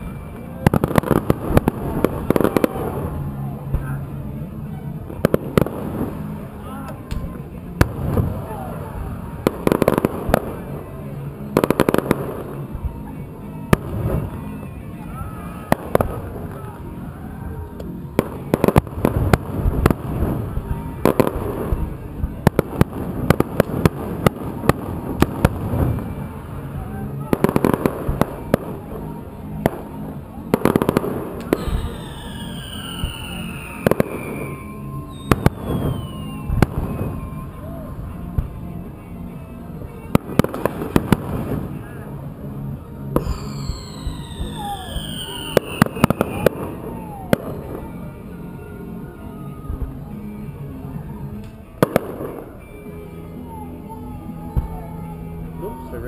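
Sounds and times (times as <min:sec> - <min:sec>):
fireworks bangs and crackles: 0:00.0 - 0:56.0
falling fireworks whistles: 0:18.2 - 0:38.5, 0:43.2 - 0:48.4, 0:51.8 - 0:56.0.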